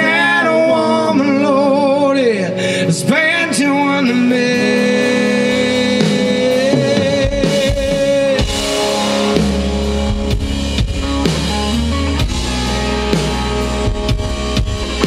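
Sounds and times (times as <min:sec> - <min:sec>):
live rock band playing: 0:00.0 - 0:15.0.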